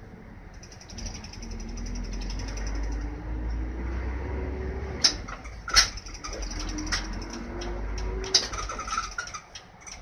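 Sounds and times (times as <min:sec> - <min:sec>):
bus diesel engine rumble: 0:00.0 - 0:10.0.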